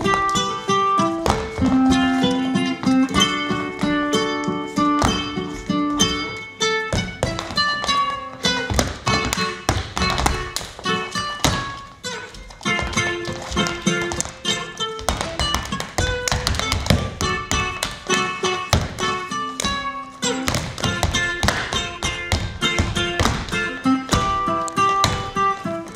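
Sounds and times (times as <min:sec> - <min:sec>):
plucked string instrument: 0:00.0 - 0:25.9
shoes stamping on wooden floor: 0:00.0 - 0:25.9.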